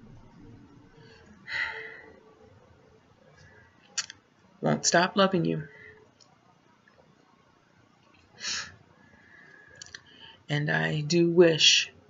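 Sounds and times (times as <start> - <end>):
lip and mouth clicks: 4.0 - 4.2, 9.8 - 10.1.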